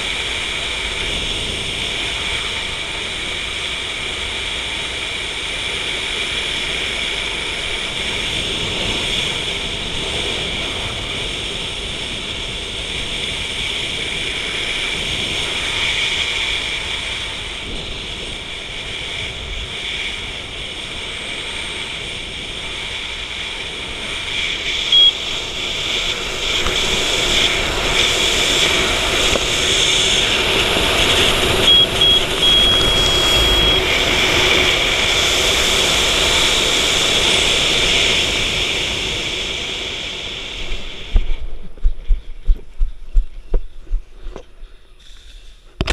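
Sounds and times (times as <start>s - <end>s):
wind rushing over microphone: 0.0s - 44.8s
high electronic beep: 24.9s - 25.2s, 31.5s - 34.1s.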